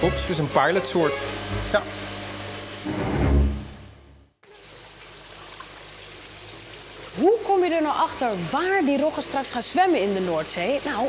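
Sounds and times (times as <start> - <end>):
water trickling and sloshing in tub: 4.4 - 11.0.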